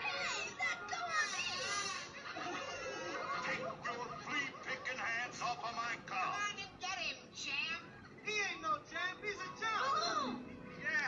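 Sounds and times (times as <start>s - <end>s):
cartoon monkeys chattering and shrieking: 0.1s - 2.2s.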